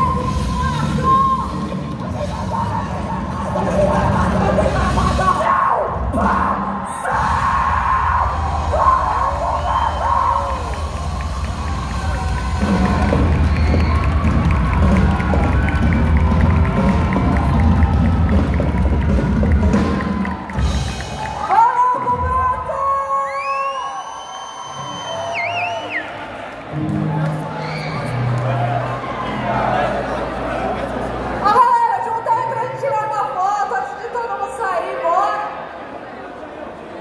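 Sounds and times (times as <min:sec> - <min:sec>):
crowd cheering: 0:06.2 - 0:32.6.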